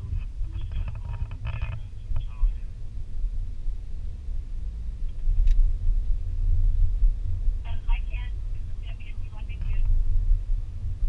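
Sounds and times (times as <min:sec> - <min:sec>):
uneven low rumble: 0:00.0 - 0:11.0.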